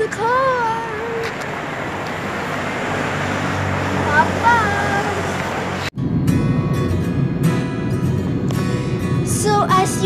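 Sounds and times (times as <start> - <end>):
low engine hum: 0.0 - 10.0
traffic noise: 0.0 - 10.0.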